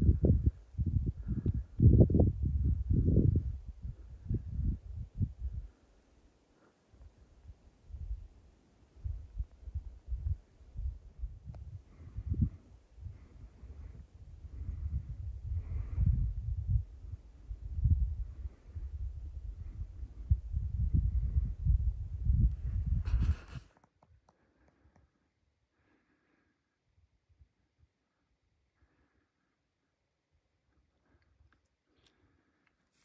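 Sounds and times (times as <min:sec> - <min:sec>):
wind buffeting microphone: 0:00.0 - 0:05.8, 0:09.0 - 0:23.7
handling rustle: 0:32.8 - 0:33.0.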